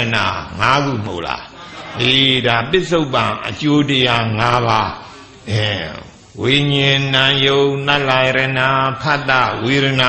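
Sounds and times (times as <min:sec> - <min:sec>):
elderly man chanting: 0:00.0 - 0:10.0.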